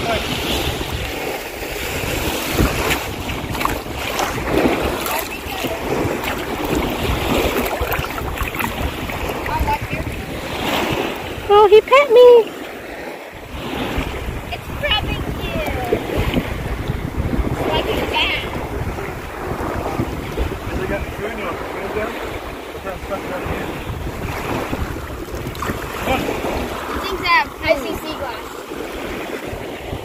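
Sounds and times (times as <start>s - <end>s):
small waves lapping: 0.0s - 30.0s
wind buffeting microphone: 0.0s - 30.0s.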